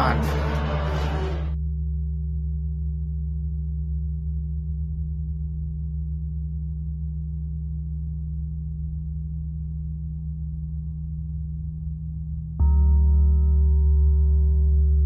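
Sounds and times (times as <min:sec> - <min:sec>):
deep bass drone: 0:00.0 - 0:15.0.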